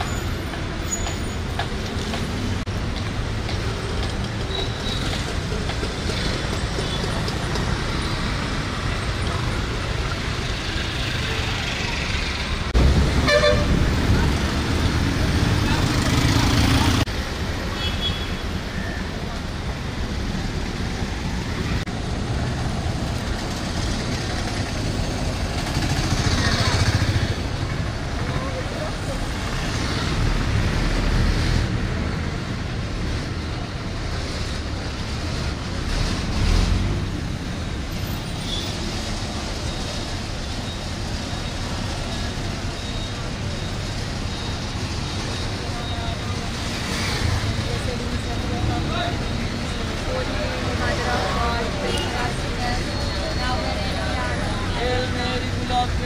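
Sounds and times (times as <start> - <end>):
vehicles passing: 0.0 - 56.0
vehicle horn: 13.2 - 13.8
voices: 39.1 - 56.0.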